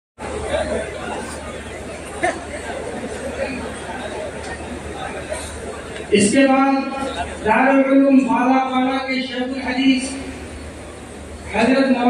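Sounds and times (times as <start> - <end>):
crowd chatter: 0.2 - 12.0.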